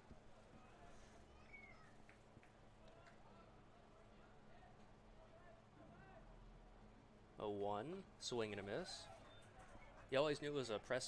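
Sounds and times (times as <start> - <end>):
faint ballpark ambience: 0.0 - 11.0.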